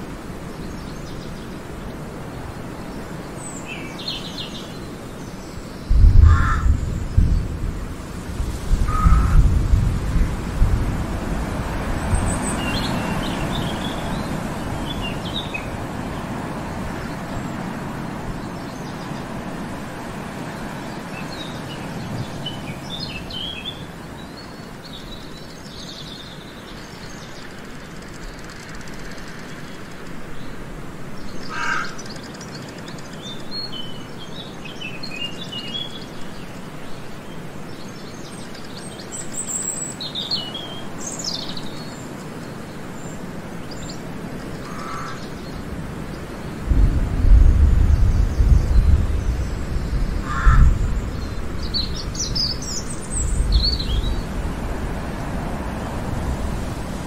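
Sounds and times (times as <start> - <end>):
steady rushing noise: 4.8 - 25.3, 43.1 - 57.0
short low bird calls: 6.0 - 6.8, 8.9 - 9.5, 44.6 - 45.4, 49.9 - 52.6
small birds chirping: 11.6 - 30.6, 31.2 - 57.0.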